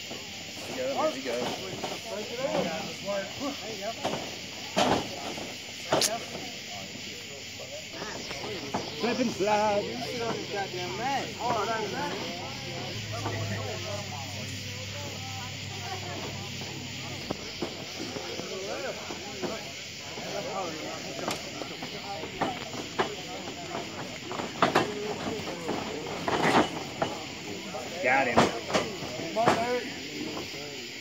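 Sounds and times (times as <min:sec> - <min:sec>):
spectators talking and calling out: 0:00.0 - 0:31.0
steady hiss: 0:00.0 - 0:31.0.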